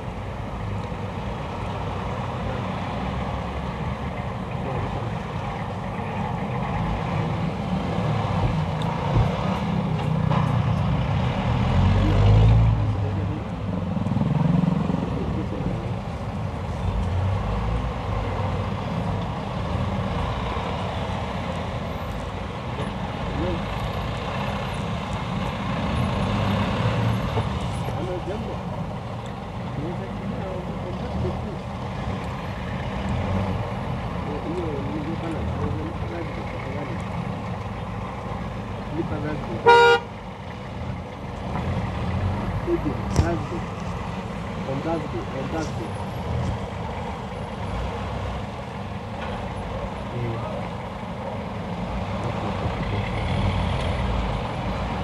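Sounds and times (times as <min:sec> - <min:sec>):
traffic engines rumbling: 0:00.0 - 0:55.0.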